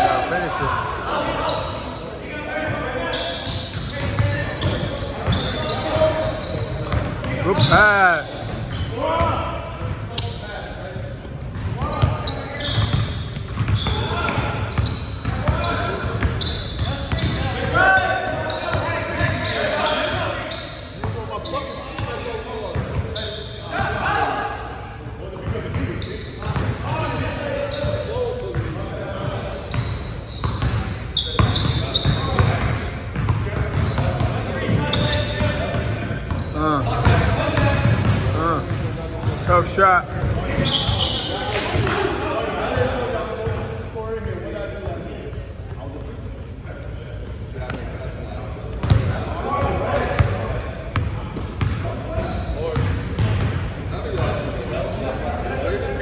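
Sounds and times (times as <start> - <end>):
players shouting and chattering: 0.0 - 56.0.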